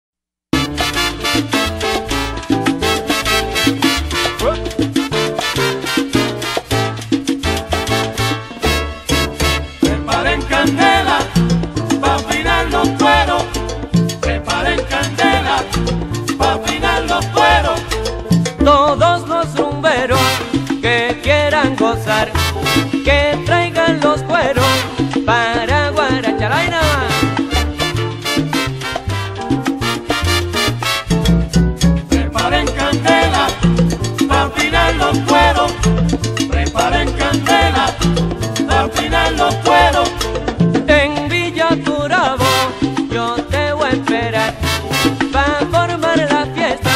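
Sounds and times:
percussion: 0.5 - 46.9
salsa band playing: 0.5 - 46.9
syncopated bass line: 0.5 - 46.9
band melodic lines: 0.6 - 11.0, 22.4 - 23.1, 27.0 - 32.6, 44.4 - 45.4.

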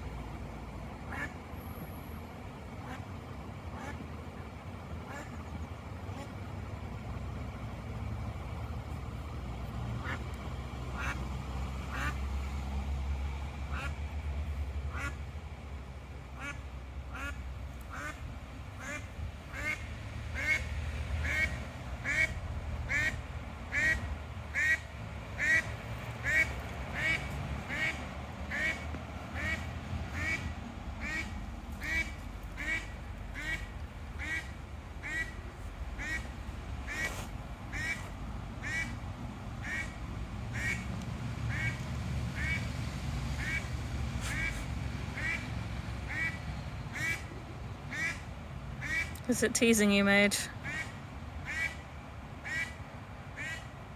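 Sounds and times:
duck quacking: 1.1 - 1.3, 3.7 - 4.0, 5.1 - 5.4, 11.0 - 11.2, 11.9 - 12.2, 13.7 - 14.0, 14.9 - 15.2, 16.4 - 18.2, 18.8 - 19.8, 20.4 - 20.6, 21.2 - 24.0, 24.6 - 24.8, 25.4 - 28.8, 29.4 - 35.4, 36.0 - 36.3, 37.7 - 38.0, 38.6 - 38.9, 40.5 - 40.8, 41.5 - 41.8, 44.3 - 44.6, 45.2 - 45.4, 46.1 - 46.4, 47.0 - 47.2, 47.9 - 48.2, 50.6 - 51.8, 52.4 - 52.8, 53.4 - 53.7.

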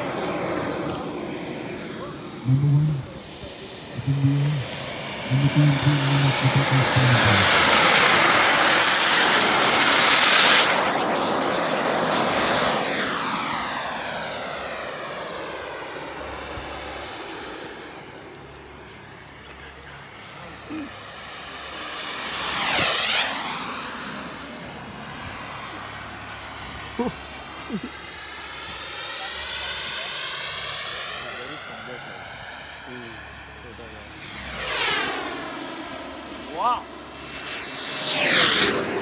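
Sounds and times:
model jet engine: 0.0 - 39.0.

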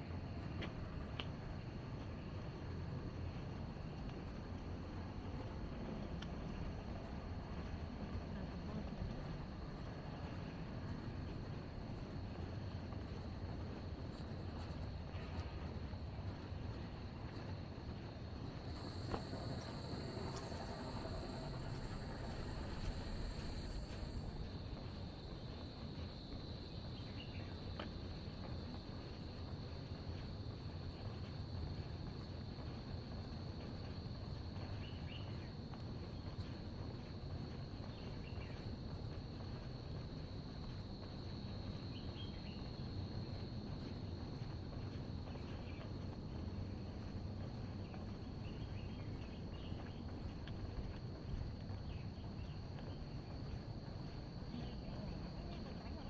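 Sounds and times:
low background rumble: 0.1 - 56.0
insects droning high-pitched: 13.2 - 46.2
higher buzzing insect: 18.8 - 24.4.

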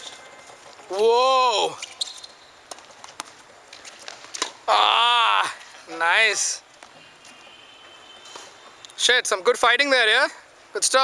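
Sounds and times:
open-air background noise: 0.0 - 11.0.

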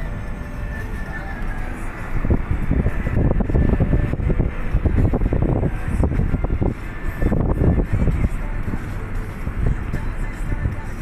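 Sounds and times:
road and engine rumble: 0.0 - 11.0
wind buffeting microphone: 1.8 - 11.0.

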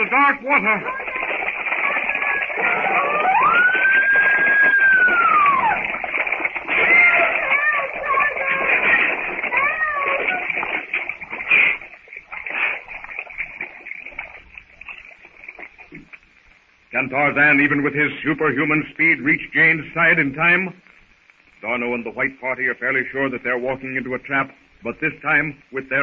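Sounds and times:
recording hiss: 0.0 - 26.0
woman screaming: 2.5 - 5.9, 9.5 - 10.5.

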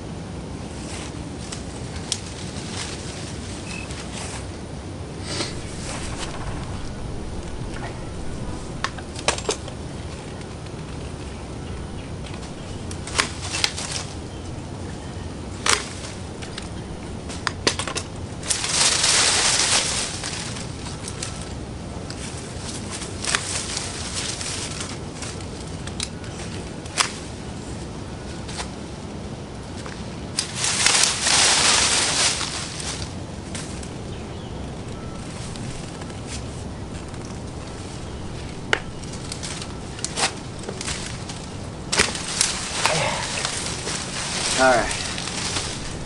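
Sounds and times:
leafy branches rustling: 0.0 - 46.0
woody stems snapping: 5.2 - 14.6, 15.6 - 27.3, 29.8 - 34.2, 34.8 - 46.0.

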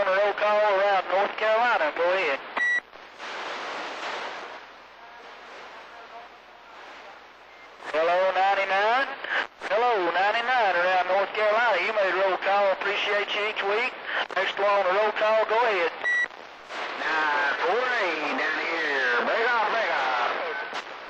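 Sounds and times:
distorted voice over radio: 0.0 - 2.5, 4.9 - 16.0, 16.7 - 20.8
radio static hiss: 0.0 - 21.0.

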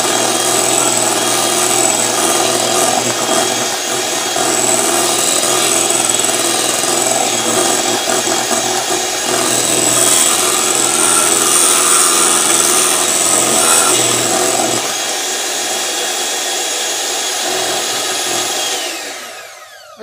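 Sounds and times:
electric hand mixer running: 0.0 - 20.0.

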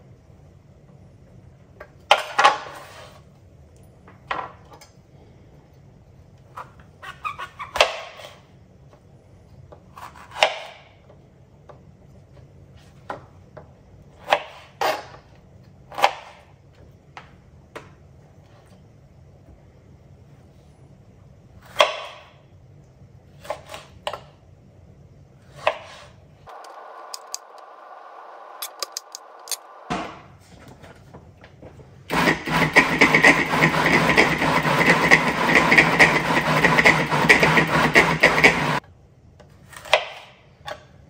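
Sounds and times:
food processor running: 26.5 - 29.6, 32.1 - 38.8.

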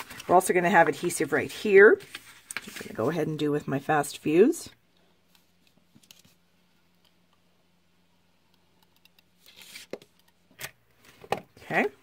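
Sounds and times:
paper handling: 1.9 - 3.1
papery scrape: 1.9 - 3.2.

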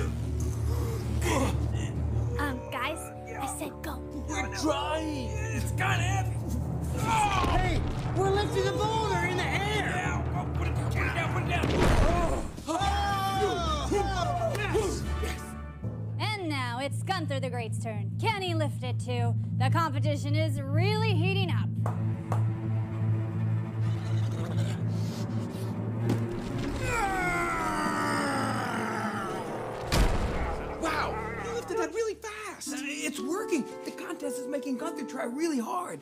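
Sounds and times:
men straining and grunting: 0.0 - 3.4, 6.6 - 8.1, 8.8 - 15.6, 23.8 - 32.0
background music: 0.0 - 36.0
man yelling with effort: 26.8 - 29.6.

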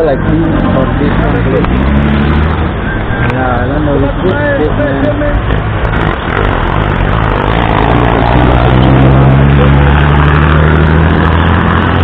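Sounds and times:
city traffic noise: 0.0 - 12.0.

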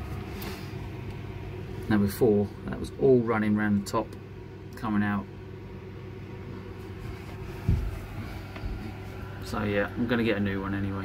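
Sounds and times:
low mechanical hum: 0.0 - 11.0
short dull thump: 7.6 - 8.9.

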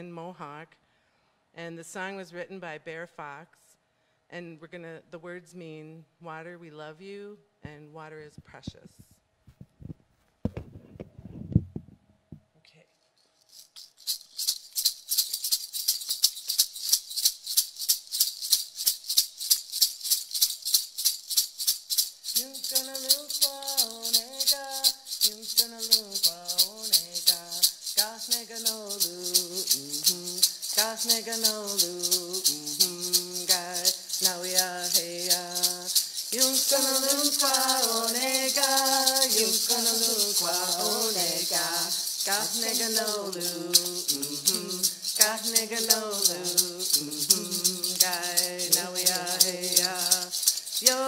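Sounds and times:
hand rattle shaken: 13.0 - 51.0
women singing in unison: 22.4 - 51.0.

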